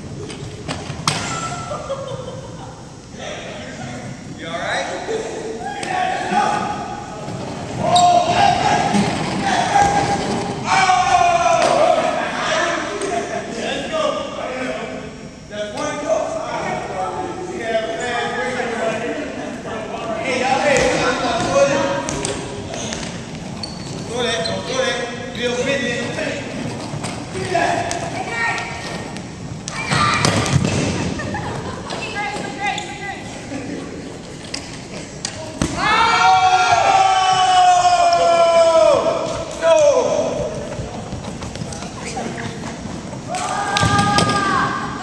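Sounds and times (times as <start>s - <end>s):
voices and shouts echoing: 1.2s - 34.3s, 34.9s - 45.0s.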